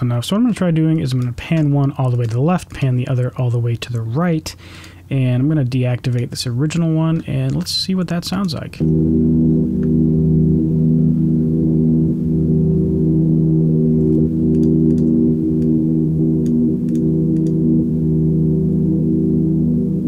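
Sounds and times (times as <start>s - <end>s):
low sustained chord drone: 8.8s - 20.0s.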